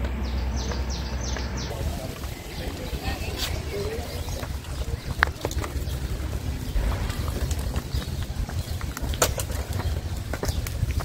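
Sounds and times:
footsteps on stone steps: 0.0 - 11.0
low rumble: 0.0 - 11.0.

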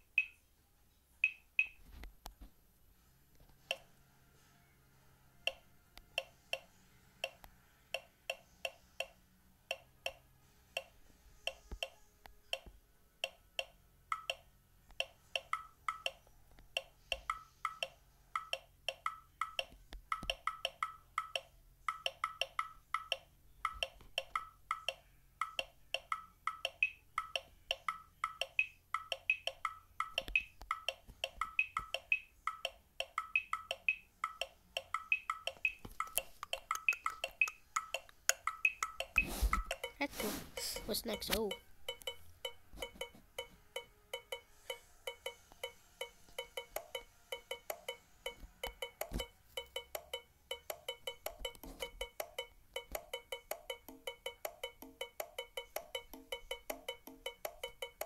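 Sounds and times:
synthesized percussion beat: 25.4 - 41.3, 48.7 - 58.0.

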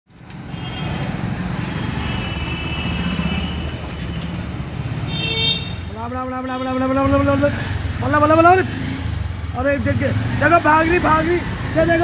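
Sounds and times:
vehicle horn toot: 5.1 - 5.9.

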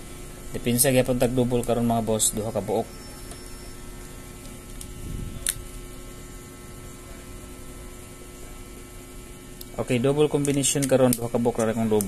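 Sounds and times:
electrical hum: 0.0 - 12.0.

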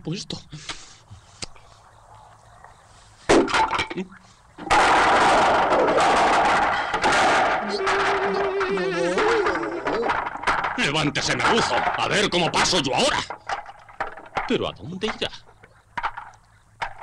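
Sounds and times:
long noisy crash: 4.6 - 9.9
small cracks: 4.6 - 17.0
loud cartoon bang: 4.7 - 10.0.

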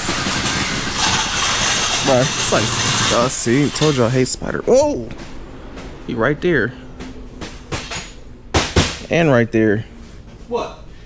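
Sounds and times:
motor running: 0.0 - 4.8.

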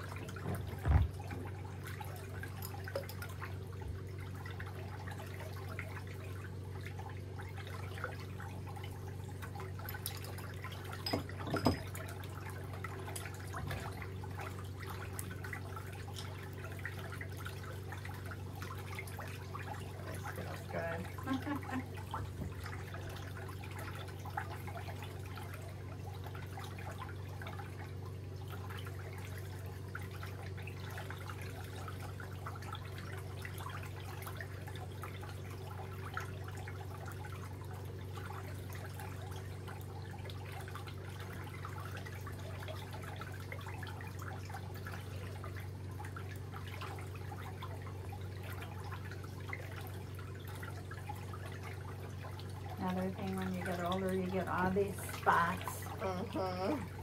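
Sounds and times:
faint water sounds: 0.0 - 57.0
foot bath humming: 0.0 - 57.0.

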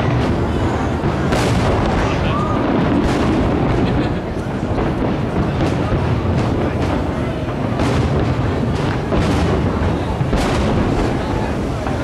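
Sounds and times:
fireworks rumble of distant bangs: 0.0 - 12.0
sharp firework cracks: 0.0 - 12.0.

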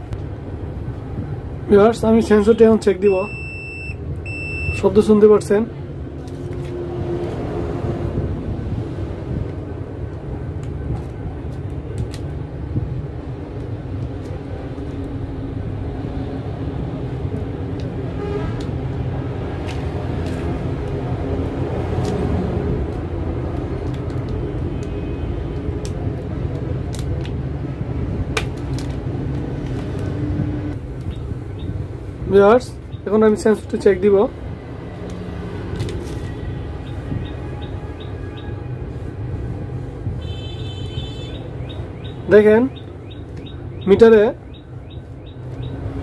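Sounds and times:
clamp meter beeping: 3.0 - 4.9.

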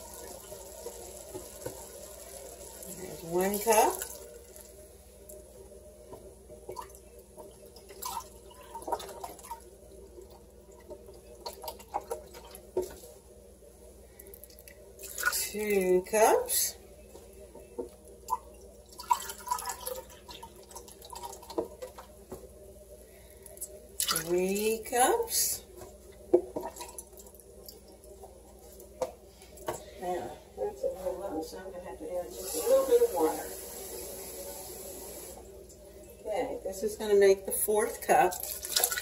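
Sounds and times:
liquid pouring: 0.0 - 5.4, 6.7 - 12.6, 18.2 - 22.1, 38.3 - 39.0.

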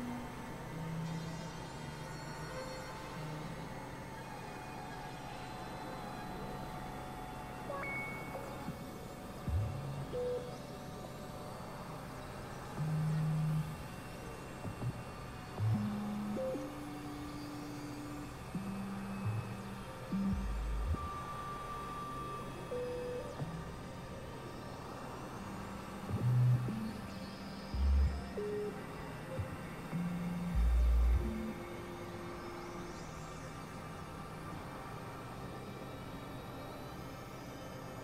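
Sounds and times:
low synthesizer drone: 0.0 - 38.0.

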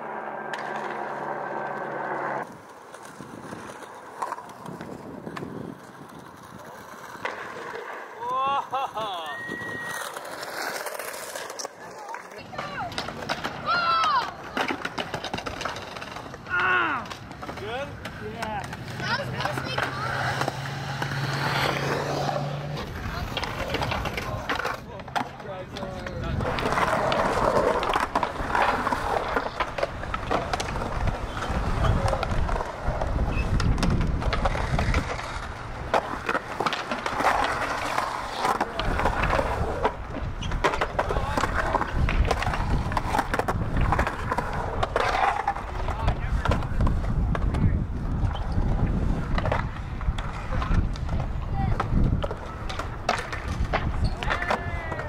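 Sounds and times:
skateboard clacks: 0.0 - 55.0
skateboard wheels rolling on concrete: 0.0 - 55.0.

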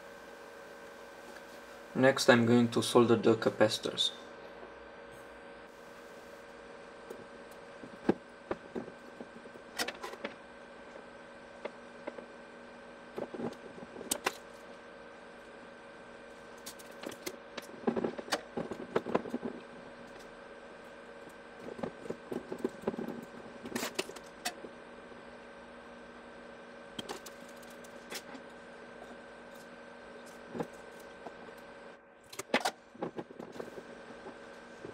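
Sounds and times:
faint steady hum: 0.0 - 34.9.

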